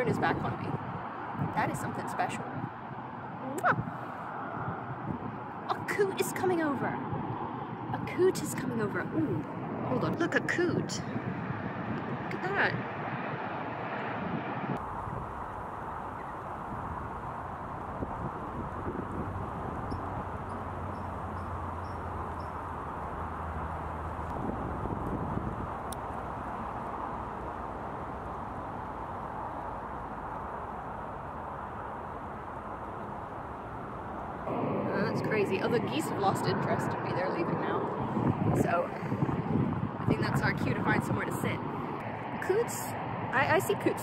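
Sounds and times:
wind noise on microphone: 0:00.0 - 0:44.0.

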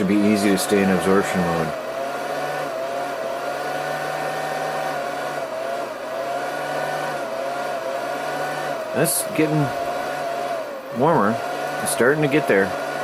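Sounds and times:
electrical whirring with whine: 0:00.0 - 0:13.0.

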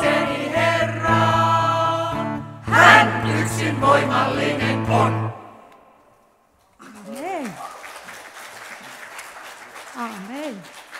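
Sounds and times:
choir singing: 0:00.0 - 0:06.0
audience applauding: 0:06.8 - 0:10.9.

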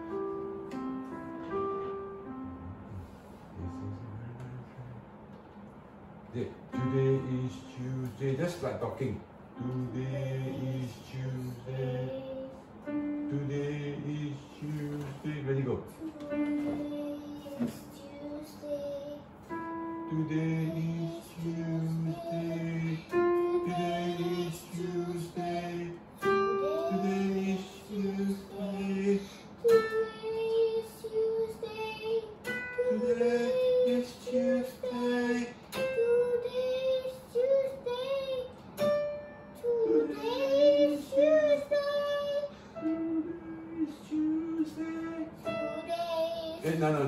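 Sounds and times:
electronic keyboard notes: 0:00.0 - 0:04.6, 0:06.6 - 0:08.5, 0:16.0 - 0:18.2
girl singing vocal exercises: 0:09.6 - 0:38.6, 0:39.6 - 0:47.0.

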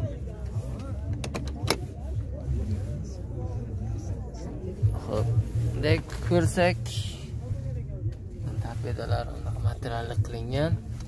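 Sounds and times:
murmur of people talking: 0:00.0 - 0:11.0
steady low rumble: 0:00.0 - 0:11.0.

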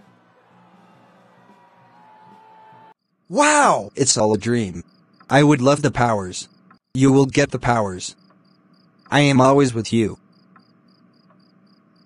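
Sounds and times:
crickets chirping: 0:03.0 - 0:12.0.

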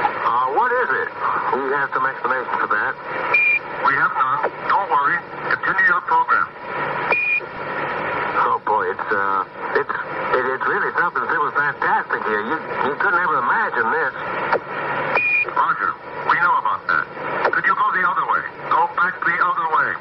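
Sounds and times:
crackly radio voice chatter: 0:00.0 - 0:06.6, 0:08.3 - 0:14.6.

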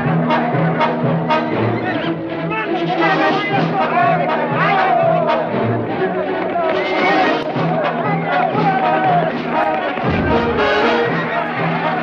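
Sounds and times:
orchestral music led by brass: 0:00.0 - 0:12.0.

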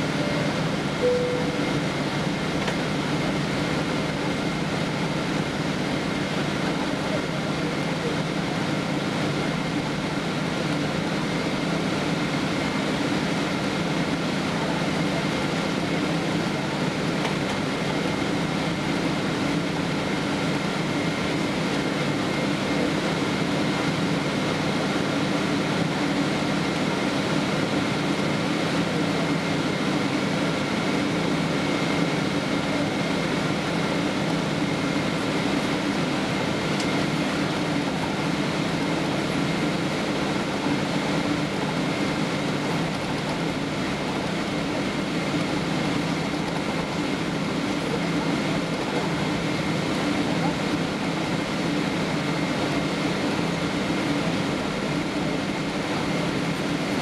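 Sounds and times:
faint whine: 0:00.0 - 0:02.3
jet engines idling: 0:00.0 - 0:57.0
cabin air-conditioning: 0:27.5 - 0:57.0.

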